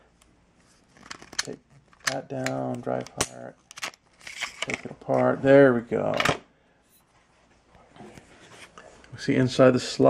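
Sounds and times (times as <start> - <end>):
faint handling noise: 0.0 - 9.4
person speaking: 1.4 - 3.6, 4.6 - 6.4.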